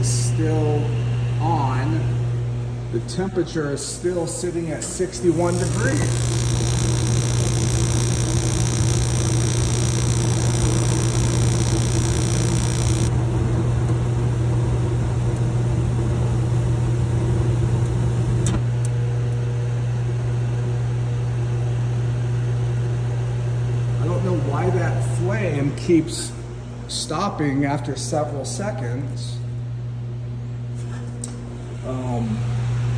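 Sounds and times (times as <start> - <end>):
heater blower humming: 0.0 - 18.6
burner shutoff click: 4.0 - 13.1.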